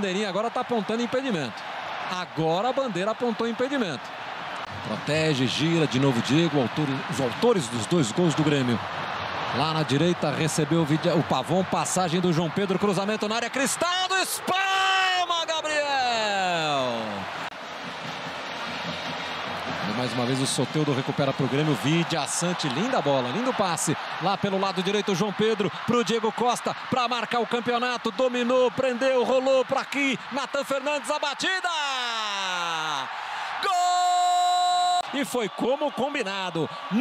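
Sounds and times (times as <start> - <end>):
stadium crowd din: 0.0 - 37.0
commentator shouting: 11.2 - 17.2, 23.0 - 36.3.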